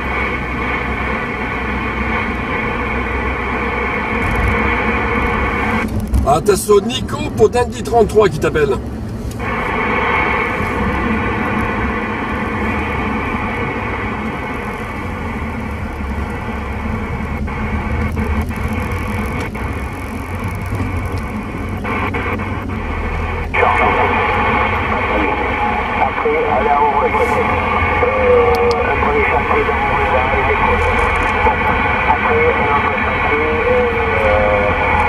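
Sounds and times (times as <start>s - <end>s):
car rumble: 0.0s - 35.0s
radio receiver hiss and static: 3.4s - 35.0s.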